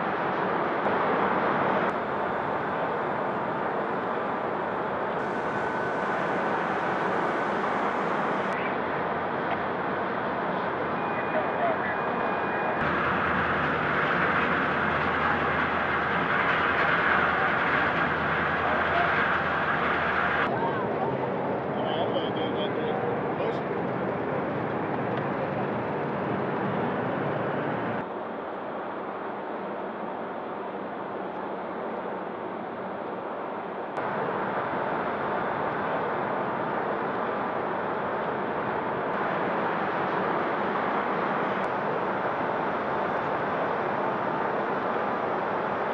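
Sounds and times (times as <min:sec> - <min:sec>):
steady noisy hiss: 0:00.0 - 0:23.6, 0:26.3 - 0:45.9.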